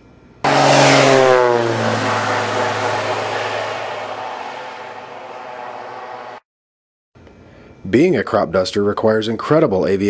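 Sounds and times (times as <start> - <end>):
airplane engine passing: 0.4 - 6.4.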